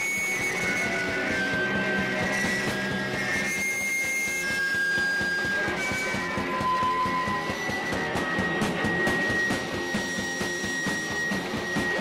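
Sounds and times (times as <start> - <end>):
distorted punk band playing: 0.0 - 12.0.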